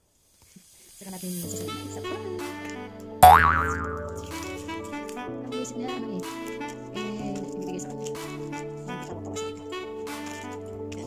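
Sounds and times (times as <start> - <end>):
background music: 1.5 - 11.0
cartoon boing sound effect: 3.2 - 4.5.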